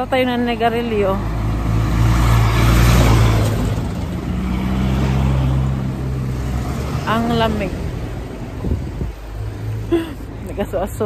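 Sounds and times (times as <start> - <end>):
vehicles passing on road: 0.0 - 11.0.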